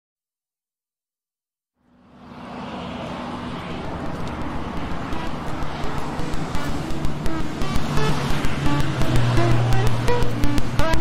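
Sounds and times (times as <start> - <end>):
modular synthesizer music: 2.1 - 11.0.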